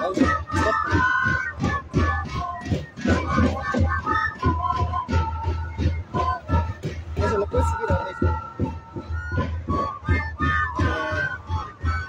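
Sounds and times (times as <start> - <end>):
repeating drum beat: 0.0 - 12.0
wind instruments playing melody: 0.0 - 12.0.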